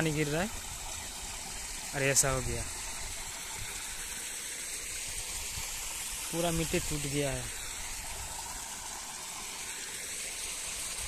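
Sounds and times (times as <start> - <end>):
water falling into pool: 0.0 - 11.0.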